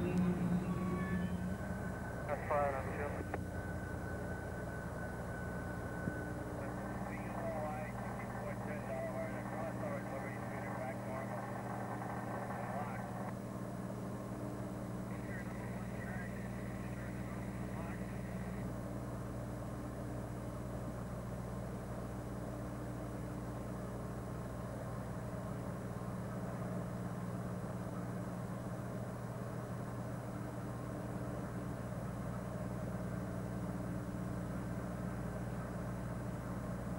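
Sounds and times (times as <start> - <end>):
diesel locomotive engines idling: 0.0 - 14.4, 15.0 - 18.6.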